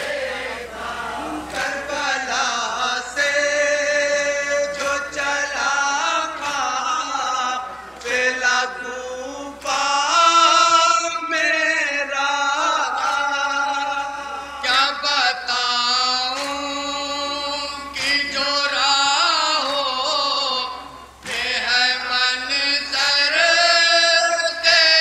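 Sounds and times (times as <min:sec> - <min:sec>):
lead reciter at a microphone: 0:00.0 - 0:25.0
men chanting in unison: 0:00.0 - 0:25.0.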